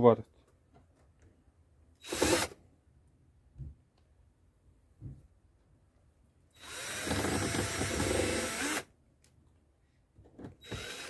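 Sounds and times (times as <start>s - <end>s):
cordless drill burst: 2.0s - 2.6s, 6.6s - 8.9s, 10.6s - 11.0s.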